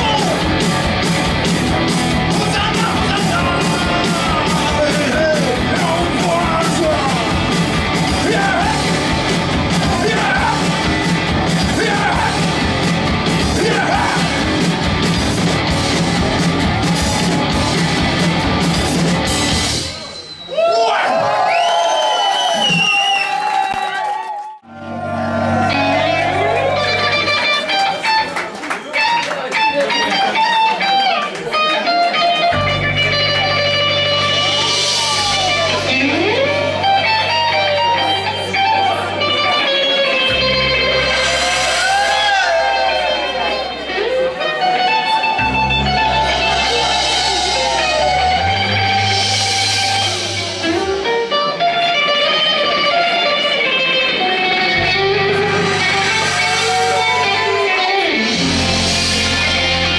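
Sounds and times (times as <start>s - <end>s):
low bass: 0.0s - 19.8s, 24.6s - 27.4s, 40.3s - 44.4s, 45.4s - 51.1s, 54.7s - 59.9s
live rock band: 0.0s - 20.5s, 24.8s - 59.9s
electric guitar single notes: 24.7s - 28.2s, 29.6s - 41.9s, 42.7s - 59.9s.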